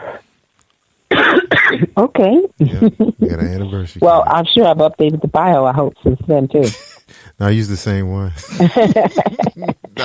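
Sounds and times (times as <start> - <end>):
person coughing: 1.1 - 1.9.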